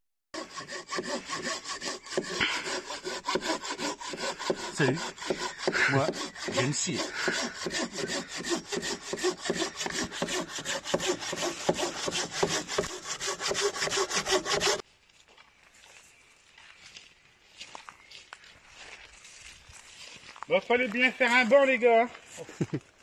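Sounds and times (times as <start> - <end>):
hand saw cutting a log: 0.4 - 14.8.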